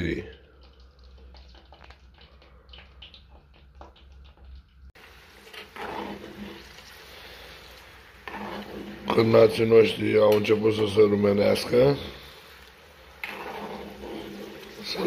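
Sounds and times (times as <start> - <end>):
sausages sizzling in fat: 0.0 - 15.0.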